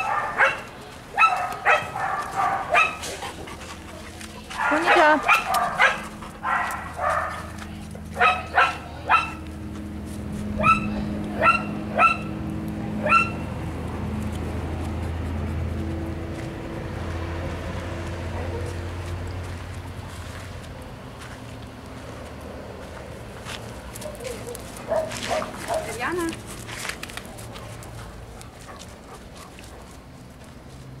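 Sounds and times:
dog barking: 0.0 - 3.2, 4.6 - 7.6, 8.2 - 9.4, 10.6 - 12.3, 13.0 - 13.4, 18.4 - 18.8, 24.0 - 26.0.

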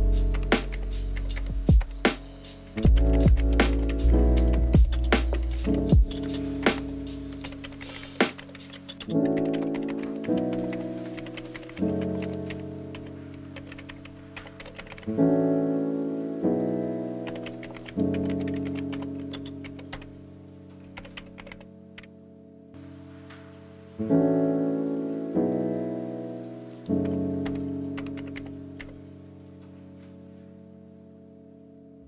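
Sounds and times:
soft keyboard chords: 0.0 - 32.0
computer keyboard typing clicks: 7.4 - 15.1, 17.3 - 20.1, 20.9 - 22.1, 27.0 - 29.0.

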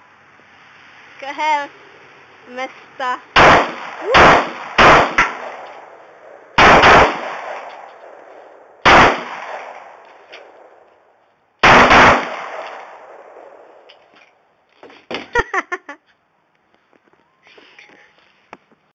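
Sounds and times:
gunshots with echo: 3.4 - 10.8, 11.6 - 13.6.

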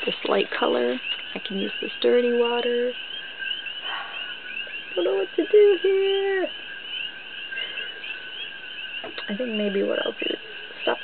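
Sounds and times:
high-pitched chirping: 0.7 - 11.0.

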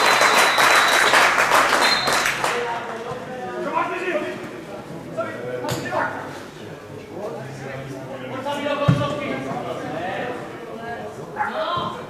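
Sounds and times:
spectators talking indistinctly: 0.0 - 12.0.

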